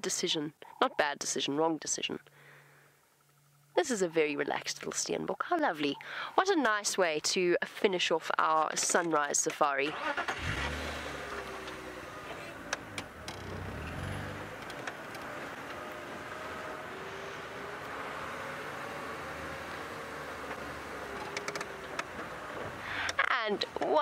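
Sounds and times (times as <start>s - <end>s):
vehicle engine humming: 10.0s - 24.0s
bodywork clicks and knocks: 12.6s - 15.9s, 20.4s - 24.0s.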